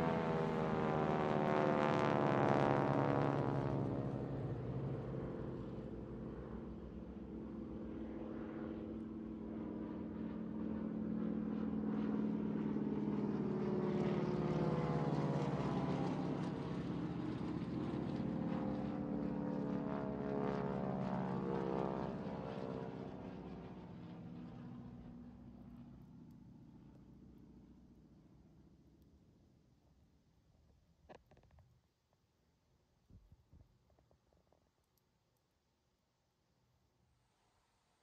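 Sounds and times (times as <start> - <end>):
propeller aircraft engines droning: 0.0 - 28.9.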